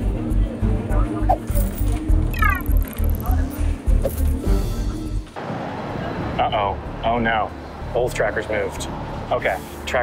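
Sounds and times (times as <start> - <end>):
street noise hum: 0.0 - 10.0
electronic blips: 2.3 - 3.4.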